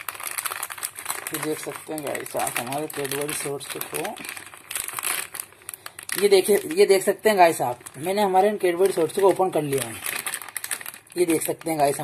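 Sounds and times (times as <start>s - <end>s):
plastic wrapper crackling: 0.0s - 12.0s.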